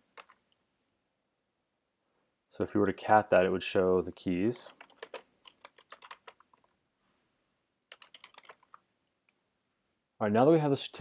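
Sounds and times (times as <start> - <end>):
typing on computer keyboard: 0.1 - 0.4, 4.7 - 6.7, 7.9 - 8.8.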